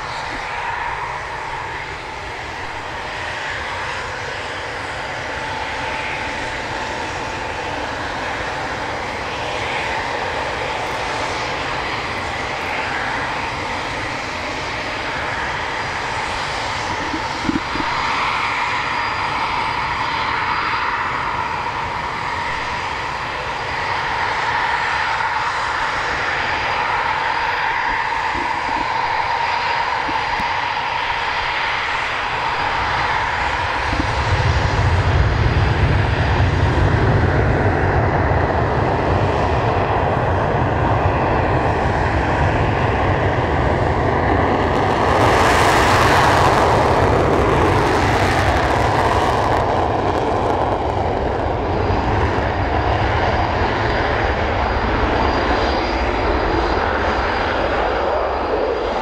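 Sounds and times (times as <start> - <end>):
jet engines whining: 0.0 - 59.0
deep rumble: 32.4 - 55.7.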